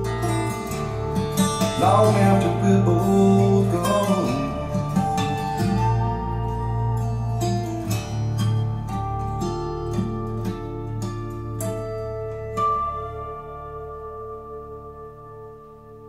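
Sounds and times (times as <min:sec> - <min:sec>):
acoustic guitar notes ringing: 0:00.0 - 0:16.0.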